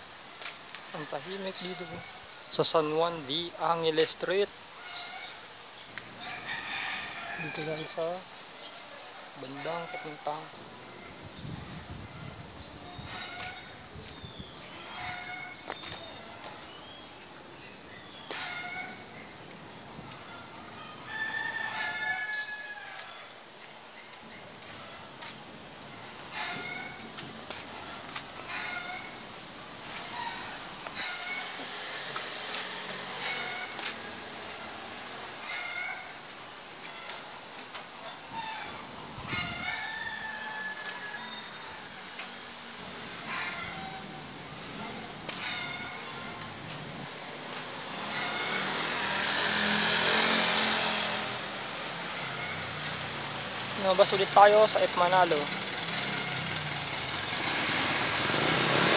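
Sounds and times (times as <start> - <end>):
birds chirping: 0.0 - 21.2, 41.0 - 47.0.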